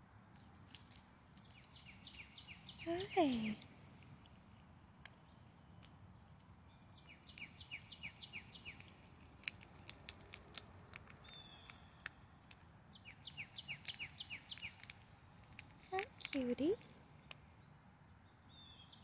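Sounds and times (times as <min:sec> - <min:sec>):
chipmunk cracking peanut shells: 0:00.3 - 0:17.5
songbird singing: 0:00.9 - 0:10.2, 0:11.1 - 0:19.0.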